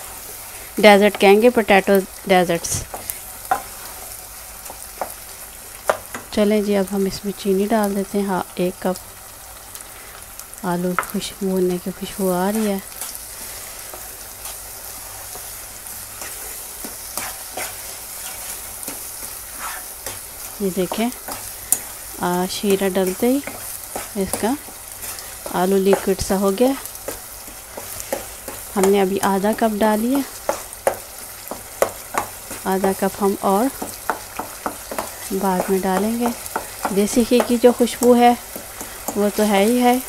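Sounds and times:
potato sizzling in a pan: 0.0 - 40.0
spoon knocking and scraping pan: 2.6 - 6.3, 10.9 - 11.2, 12.5 - 21.9, 22.5 - 39.8
spoon knocking against pan: 30.4 - 33.0, 33.7 - 39.2.

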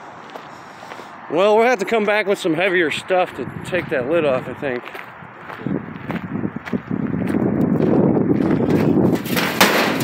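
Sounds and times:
footsteps crunching on gravel: 0.1 - 9.6
grill lid metal rattle: 9.1 - 10.0.

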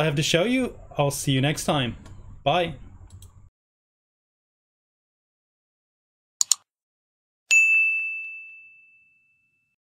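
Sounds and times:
notification bell ding: 7.5 - 9.8.

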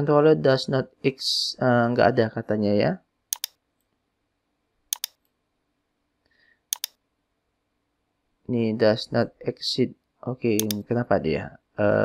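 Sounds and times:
computer mouse button clicks: 3.3 - 3.6, 4.9 - 5.2, 6.7 - 7.0, 10.6 - 10.8.

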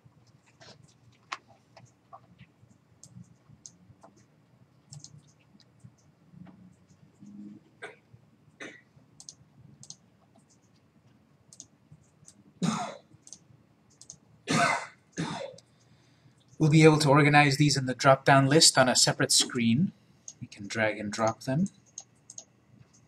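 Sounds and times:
computer mouse clicks: 0.2 - 4.3, 4.9 - 7.4, 9.2 - 10.8, 11.5 - 12.4, 13.2 - 14.2, 21.2 - 23.0
man coughing: 12.6 - 13.1, 14.5 - 15.6.

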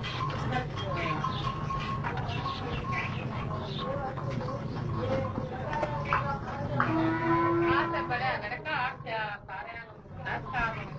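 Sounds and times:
stone mill humming: 0.0 - 9.4.

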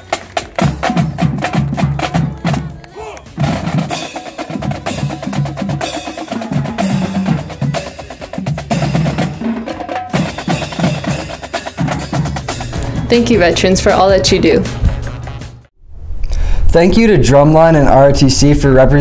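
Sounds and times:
bass drum beats: 0.0 - 15.7.

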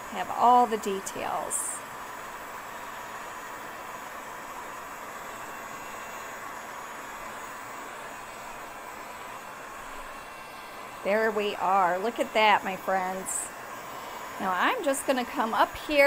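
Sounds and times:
heat gun blowing air: 0.0 - 16.0.

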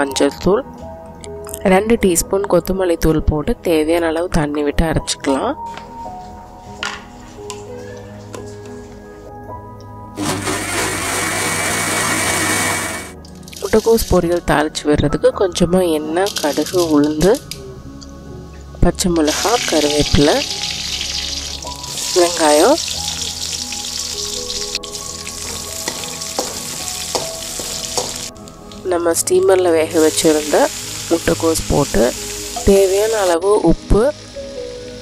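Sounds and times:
mixer grinder running: 10.2 - 13.2
vegetables sizzling in hot oil: 10.2 - 13.8, 19.2 - 28.3, 29.9 - 35.0.

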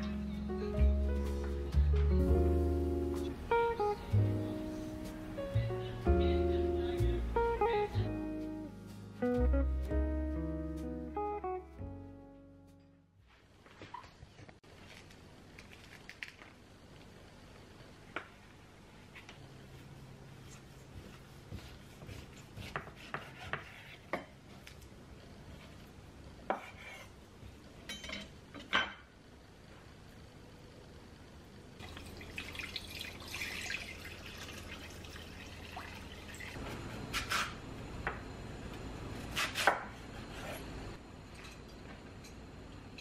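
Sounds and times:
knife chopping on wooden board: 22.1 - 24.3, 39.3 - 40.6.

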